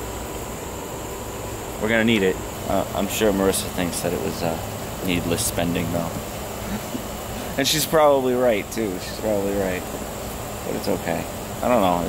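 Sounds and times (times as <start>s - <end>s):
insect chorus buzzing: 0.0s - 12.0s
low steady hum: 0.0s - 12.0s.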